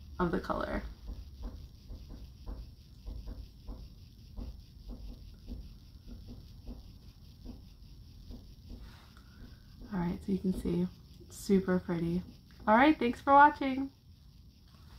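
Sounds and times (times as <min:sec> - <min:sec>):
low room hum: 0:00.0 - 0:14.9
makeup brush tapping and brushing: 0:00.3 - 0:13.7.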